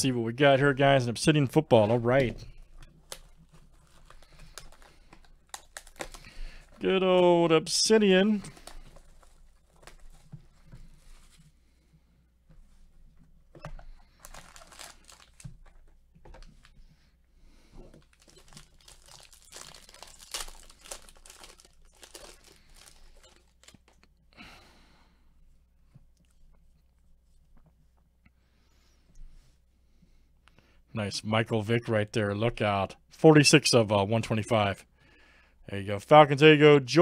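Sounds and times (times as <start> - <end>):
plastic and foil wrapping crinkling: 2.6 - 6.8, 8.2 - 11.4, 14.0 - 16.7, 17.9 - 24.1.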